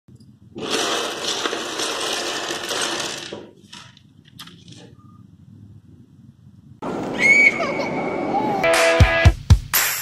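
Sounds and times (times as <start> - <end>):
plastic building blocks clattering: 0.5 - 4.9.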